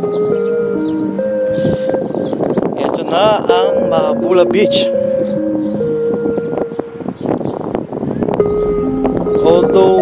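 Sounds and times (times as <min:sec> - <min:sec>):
background music: 0:00.0 - 0:07.3, 0:08.0 - 0:10.0
wind noise on microphone: 0:00.0 - 0:10.0.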